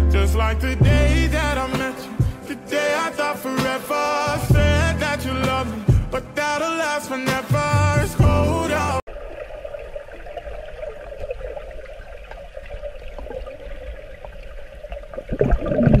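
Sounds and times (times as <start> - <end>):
pop song with man singing: 0.0 - 9.1
bubbles blown underwater: 15.1 - 16.0.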